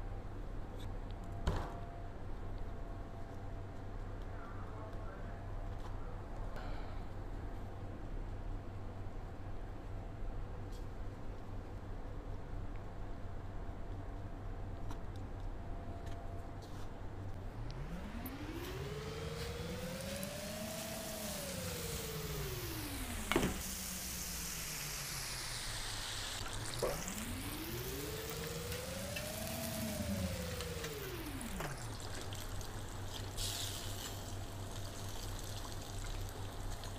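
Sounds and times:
smooth rising and falling tone: 0:17.4 - 0:33.4
chicken deep-frying in oil: 0:18.1 - 0:36.9.

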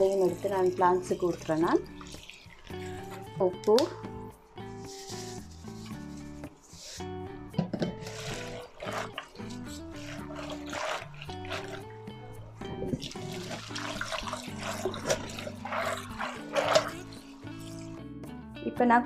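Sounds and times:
water splashing in a pot: 0:00.0 - 0:04.0, 0:08.0 - 0:18.1
background music: 0:00.0 - 0:19.0.

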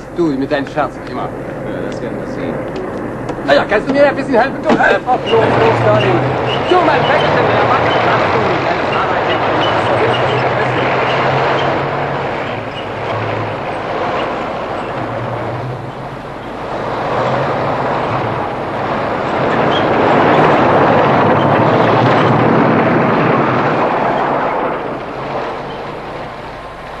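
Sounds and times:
armoured vehicle engine: 0:00.0 - 0:27.0
tracks clattering and rumbling: 0:00.0 - 0:27.0.

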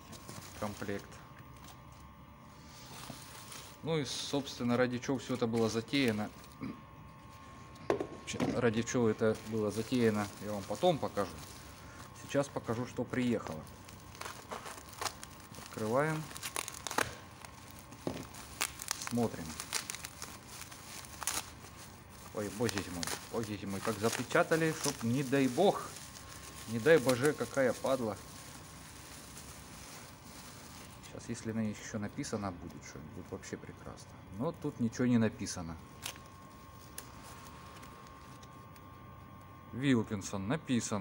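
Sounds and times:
plastic bag rustling: 0:00.0 - 0:06.6, 0:08.6 - 0:33.5, 0:35.8 - 0:39.0
plastic wrapping crinkling: 0:00.0 - 0:06.6, 0:08.6 - 0:33.5, 0:35.4 - 0:39.5.

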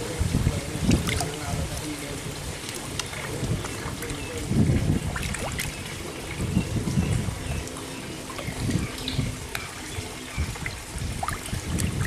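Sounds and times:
fish thrashing in water: 0:00.8 - 0:12.0
water dripping: 0:00.8 - 0:12.0.

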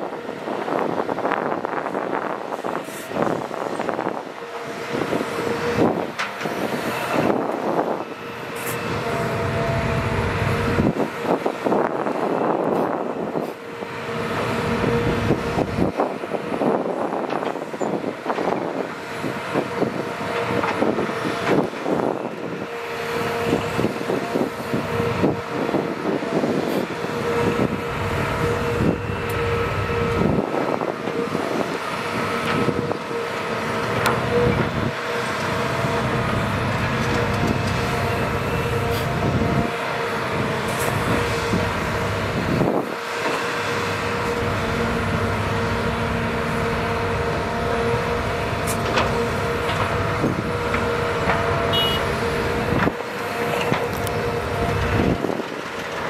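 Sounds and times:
excavator diesel engine: 0:00.0 - 0:56.0
hydraulic whine: 0:00.1 - 0:56.0.

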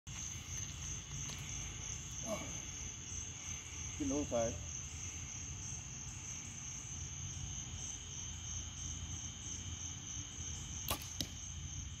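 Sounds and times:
crickets chirping: 0:00.1 - 0:12.0
arrow striking target: 0:10.8 - 0:11.4
bow string snap: 0:10.9 - 0:11.4.

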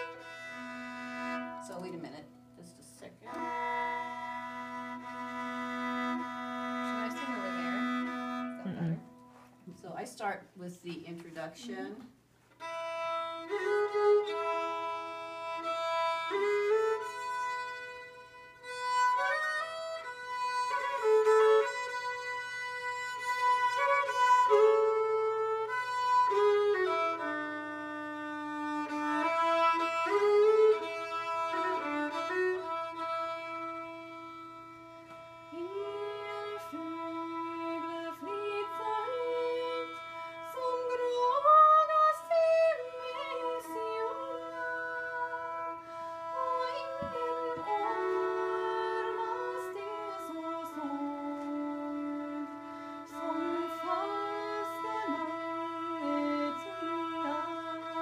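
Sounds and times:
solo fiddle melody: 0:00.0 - 0:10.1, 0:12.5 - 0:58.0.

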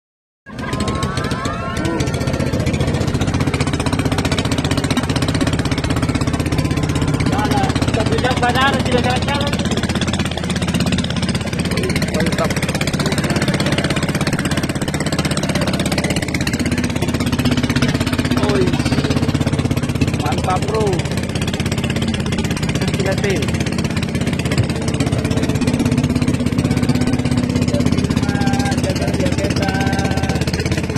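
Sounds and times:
boat engine puttering: 0:00.4 - 0:30.9
voices: 0:00.5 - 0:30.9.

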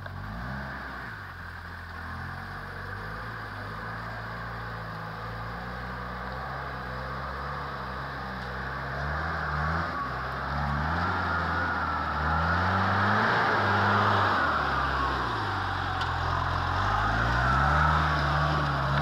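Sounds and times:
off-road vehicle engine revving: 0:00.0 - 0:19.0.

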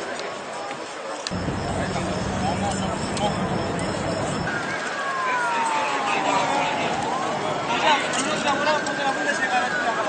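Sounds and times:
low engine-like hum: 0:01.3 - 0:04.6
emergency siren wailing: 0:01.3 - 0:10.0.

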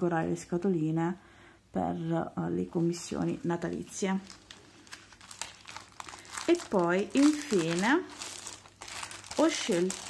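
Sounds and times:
plastic bag crinkling: 0:02.8 - 0:10.0.

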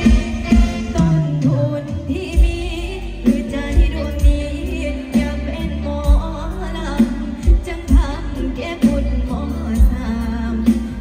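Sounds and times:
keyboard and bass: 0:00.0 - 0:11.0
woman singing: 0:00.0 - 0:11.0.

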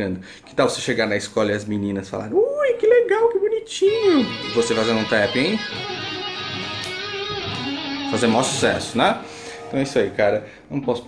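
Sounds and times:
electric guitar tapped lick: 0:04.2 - 0:08.7.

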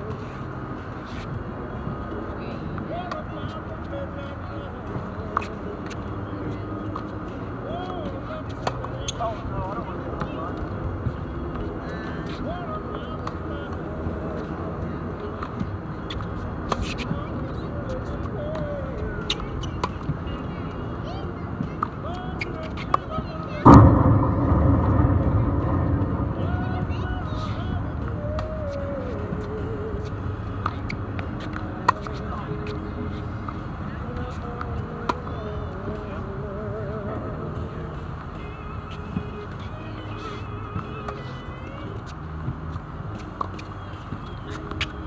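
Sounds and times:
loud rush of noise: 0:23.6 - 0:31.1.

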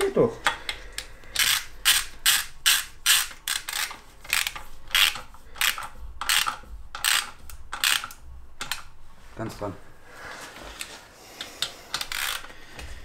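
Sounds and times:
ratchet wrench clicking: 0:01.0 - 0:08.9, 0:11.9 - 0:12.5.

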